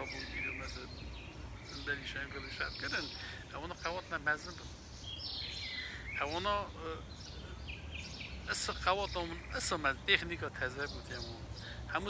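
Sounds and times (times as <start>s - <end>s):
man talking: 0.0s - 4.8s, 6.0s - 7.7s, 8.5s - 12.0s
small birds chirping: 0.0s - 12.0s.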